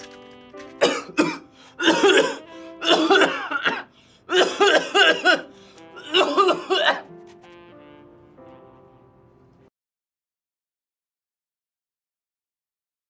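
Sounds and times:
soft background music: 0.0s - 9.7s.

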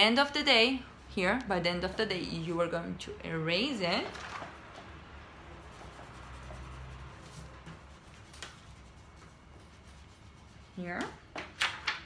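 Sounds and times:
rubbing on paper: 5.6s - 11.2s.

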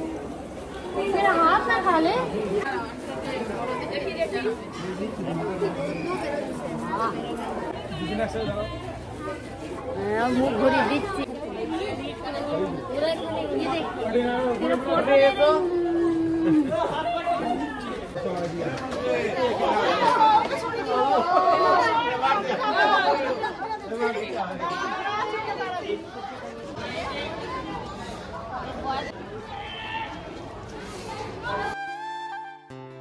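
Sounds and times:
people talking at once: 0.0s - 32.2s
overlapping chatter: 0.0s - 33.0s.

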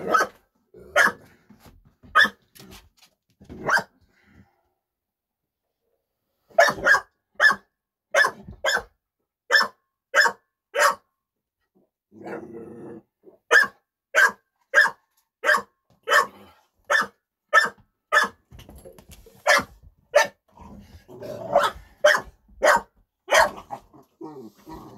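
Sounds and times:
dog barking: 0.0s - 1.2s, 2.1s - 2.4s, 3.6s - 4.0s, 6.5s - 8.9s, 9.5s - 11.1s, 13.5s - 18.4s, 19.4s - 20.4s, 21.4s - 23.8s
dog growling: 12.2s - 13.1s, 20.5s - 21.8s, 23.6s - 24.9s.

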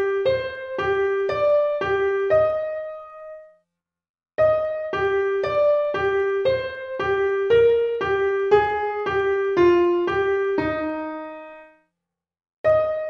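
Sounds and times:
piano-tone keyboard notes: 0.0s - 3.5s, 4.4s - 11.7s, 12.7s - 13.0s.

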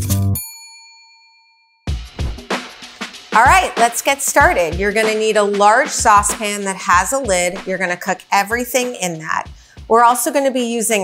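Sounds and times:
bright bell ding: 0.3s - 1.8s
background music: 1.9s - 11.0s.

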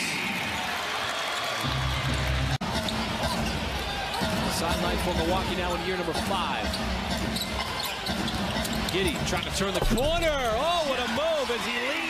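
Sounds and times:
basketball dribbling on hardwood: 9.8s - 10.6s.

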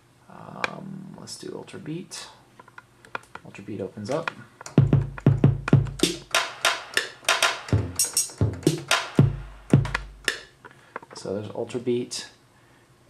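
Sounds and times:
electronic snare and hi-hat hits: 4.7s - 10.6s
electronic kick drum hits: 4.8s - 6.5s, 7.3s - 10.4s.

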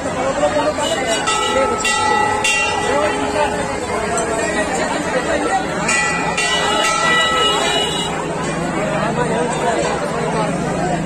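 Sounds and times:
crowd chatter: 0.0s - 11.0s
held horn tone: 0.8s - 3.0s, 6.4s - 8.2s.

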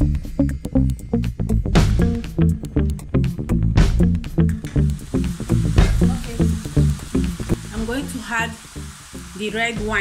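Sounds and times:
music with steady beat: 0.0s - 8.2s
meat sizzling in a pan: 4.7s - 10.0s.

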